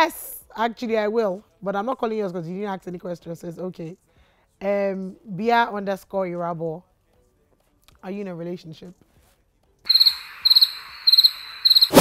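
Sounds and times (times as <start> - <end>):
cricket chirps: 9.9 - 12.0.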